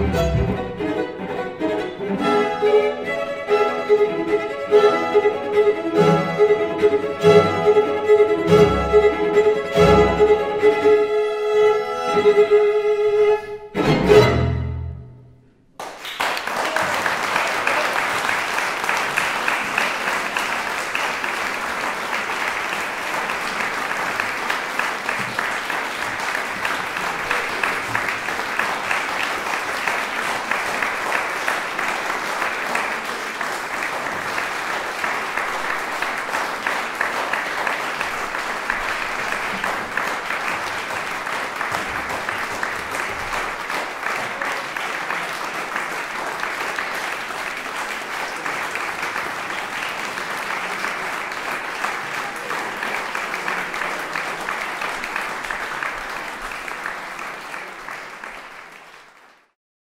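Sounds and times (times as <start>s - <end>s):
crowd applauding: 0.0s - 11.1s, 15.8s - 59.6s.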